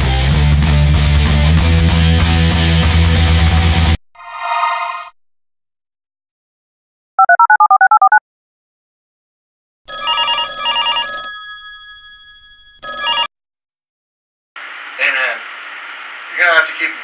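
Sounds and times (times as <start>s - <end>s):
electronic telephone ring: 7.2s - 8.2s, 9.9s - 13.3s.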